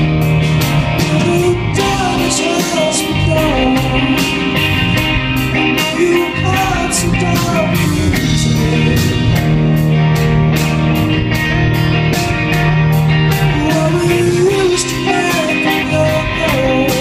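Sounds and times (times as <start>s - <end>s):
rock band playing: 0.0s - 17.0s
man singing: 0.9s - 5.0s, 5.6s - 9.7s, 13.3s - 17.0s.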